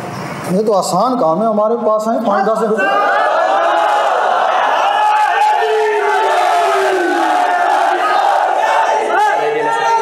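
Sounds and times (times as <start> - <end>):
crowd of men shouting: 2.3 - 10.0.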